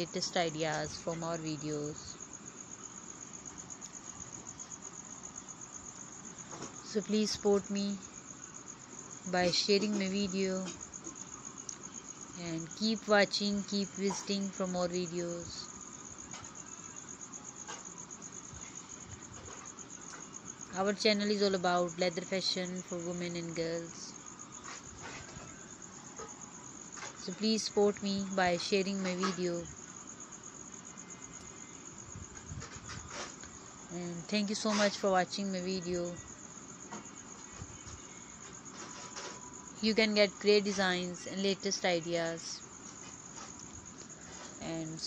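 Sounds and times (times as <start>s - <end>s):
cricket chirping: 0.0s - 45.0s.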